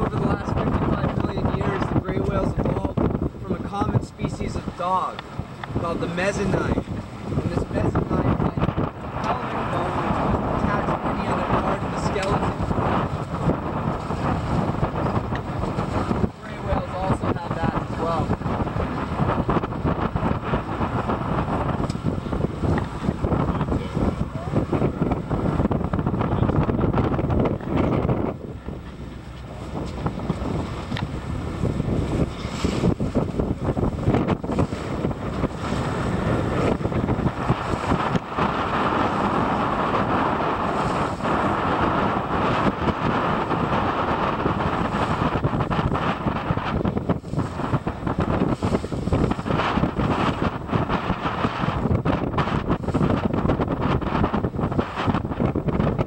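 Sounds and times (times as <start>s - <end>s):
boat motor running: 0.0s - 56.0s
choppy water: 0.0s - 56.0s
wind buffeting microphone: 0.0s - 56.0s.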